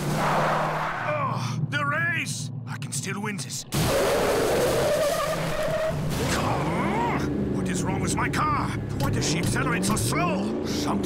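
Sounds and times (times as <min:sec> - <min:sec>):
tires skidding over dirt: 0:03.7 - 0:11.0.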